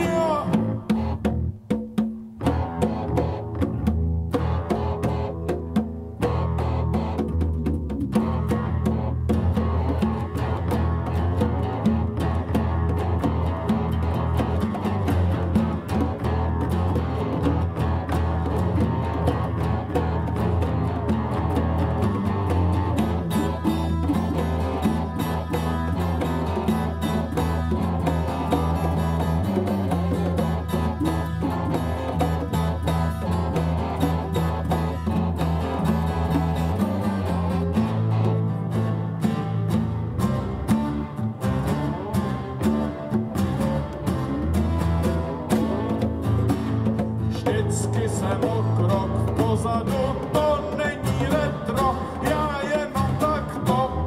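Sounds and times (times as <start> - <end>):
sustained bass line: 0.0 - 1.7, 2.3 - 54.0
congas: 0.0 - 54.0
electric guitars: 0.0 - 54.0
strummed acoustic guitar: 0.0 - 54.0.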